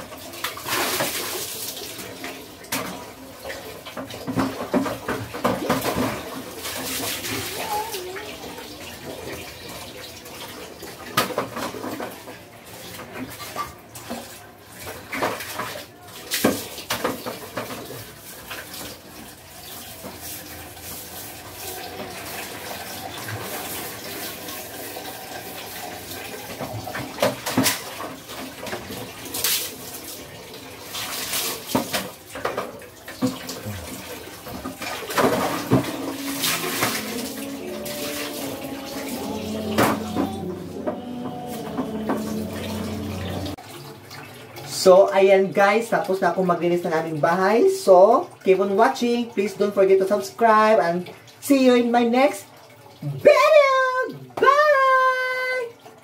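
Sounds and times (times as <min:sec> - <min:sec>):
water splashing: 0:14.1 - 0:44.4
wet scrubbing on ceramic tiles: 0:33.4 - 0:43.6
woman's sing-song goodbye call: 0:35.3 - 0:43.6.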